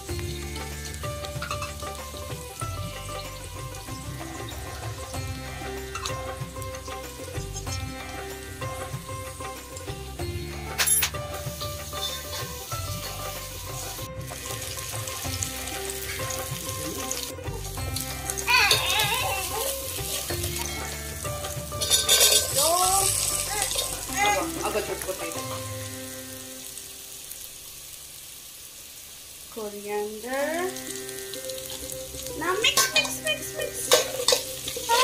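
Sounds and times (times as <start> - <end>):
metal spoon stirring in pot: 0.0 - 25.6, 31.3 - 35.0
background music: 0.0 - 27.6, 29.6 - 35.0
vegetables sizzling in oil: 0.0 - 35.0.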